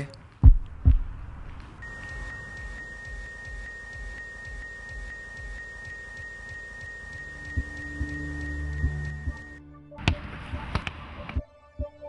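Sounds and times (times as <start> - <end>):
faint low rumble: 0.0 - 5.6
low musical tones: 0.0 - 12.0
high-pitched electronic tone: 1.8 - 9.7.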